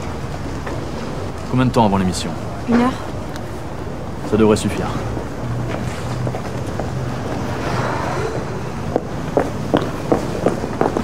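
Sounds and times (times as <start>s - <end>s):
even rush of street noise: 0.0s - 11.0s
low hum: 5.1s - 9.8s.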